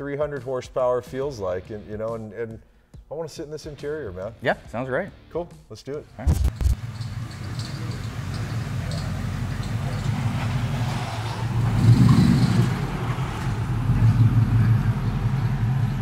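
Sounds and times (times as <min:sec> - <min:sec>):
car engine pulling away: 0:06.5 - 0:16.0.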